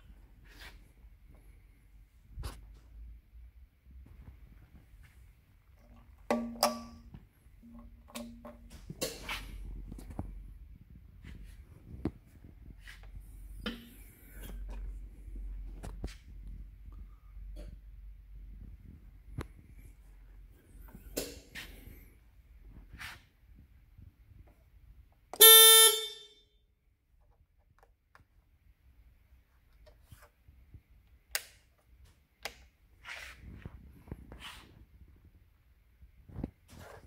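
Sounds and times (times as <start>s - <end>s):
tow tug horn beep: 25.4s - 26.4s.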